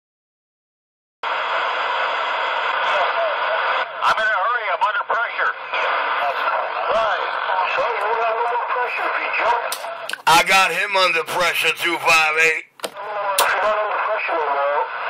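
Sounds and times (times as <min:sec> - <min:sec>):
radio static hiss: 0:01.3 - 0:15.0
garbled warbling radio voices: 0:02.8 - 0:15.0.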